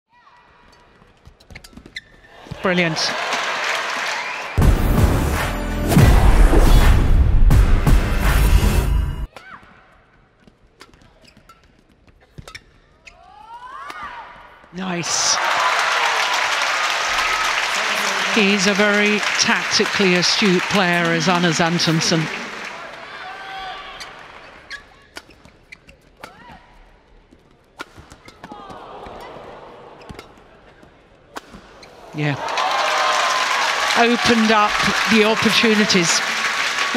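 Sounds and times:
shoe squeaks: 0.7s - 2.4s, 10.7s - 13.8s, 23.8s - 28.6s
racket hitting shuttlecock: 26.2s - 26.6s, 27.8s - 29.4s.

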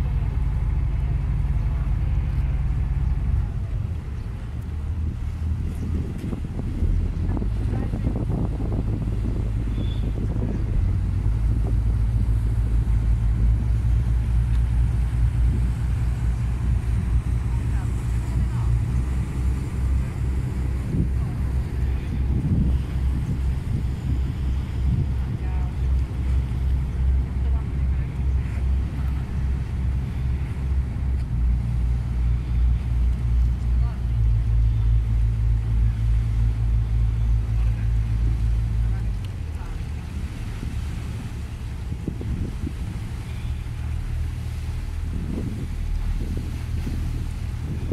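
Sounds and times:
boat engine droning: 0.0s - 47.9s
water noise: 0.0s - 47.9s
wind noise: 0.0s - 47.9s.

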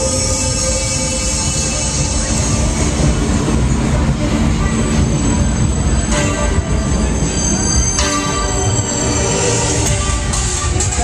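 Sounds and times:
high whining squeal: 0.0s - 11.0s
thrill ride rumble: 0.0s - 11.0s.

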